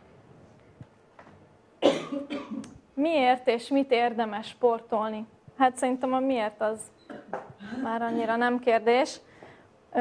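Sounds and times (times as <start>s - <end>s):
person coughing: 1.8s - 2.7s, 7.1s - 8.5s.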